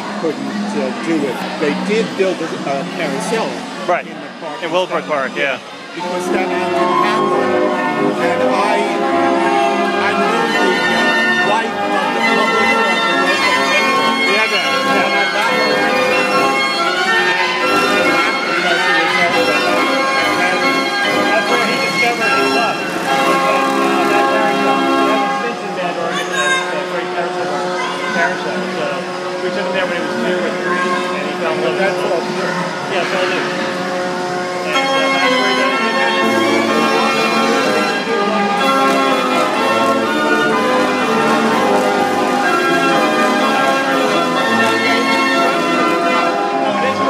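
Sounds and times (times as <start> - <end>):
band organ playing chords: 0.0 - 47.0.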